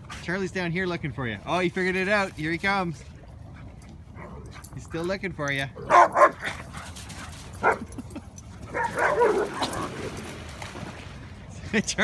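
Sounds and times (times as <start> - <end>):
dog barking: 5.9 - 6.5, 7.6 - 7.8, 8.7 - 9.9.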